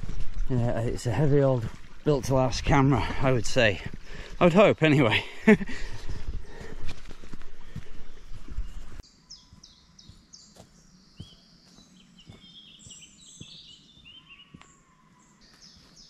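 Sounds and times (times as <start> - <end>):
birds chirping: 0.0 - 16.0
wind noise on microphone: 5.5 - 9.0.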